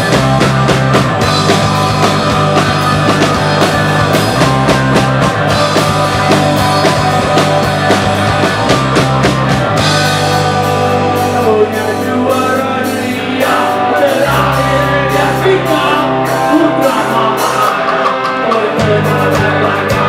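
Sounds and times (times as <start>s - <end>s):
bass guitar: 0.0s - 20.0s
drum kit beat: 0.0s - 20.0s
electric guitar: 0.0s - 20.0s.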